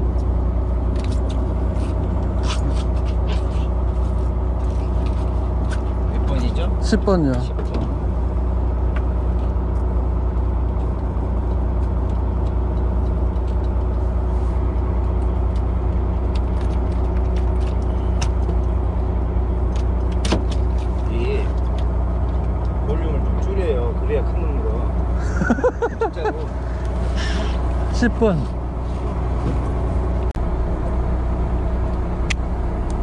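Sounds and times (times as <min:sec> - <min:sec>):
boat engine humming: 0:00.0 - 0:33.0.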